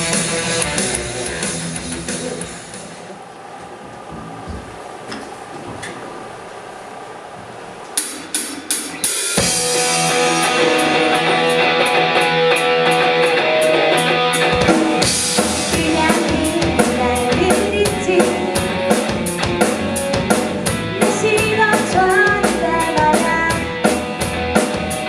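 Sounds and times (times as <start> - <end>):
rock band playing: 0.0 - 3.1, 8.2 - 25.0
electric guitars: 0.0 - 4.8, 8.9 - 25.0.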